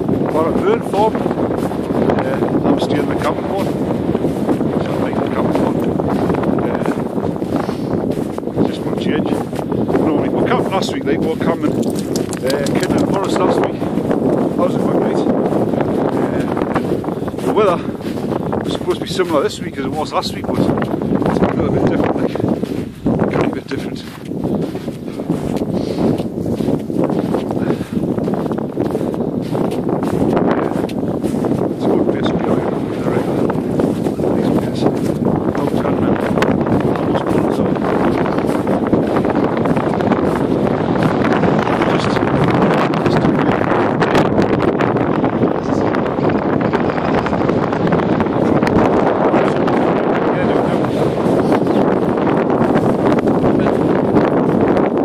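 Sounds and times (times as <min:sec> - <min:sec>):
wind buffeting microphone: 0:00.0 - 0:55.0
man talking: 0:00.2 - 0:01.3, 0:02.1 - 0:03.8, 0:04.7 - 0:07.1, 0:08.6 - 0:16.7, 0:17.4 - 0:22.6, 0:23.2 - 0:24.2, 0:30.6 - 0:39.8, 0:41.4 - 0:44.3, 0:48.3 - 0:51.9, 0:53.5 - 0:53.9.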